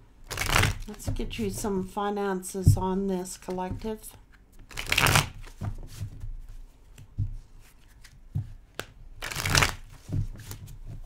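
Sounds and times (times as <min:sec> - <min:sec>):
cards riffle shuffling: 0:04.6 - 0:06.0, 0:06.9 - 0:10.8.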